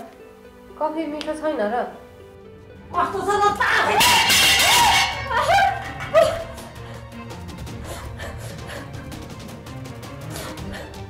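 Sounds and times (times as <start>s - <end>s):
background music: 0.0s - 11.0s
woman wailing sobs: 3.6s - 6.7s.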